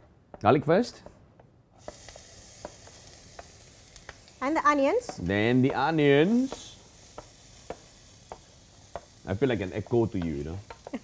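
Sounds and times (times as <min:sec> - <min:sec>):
garlic sizzling in hot oil: 0:01.7 - 0:11.0.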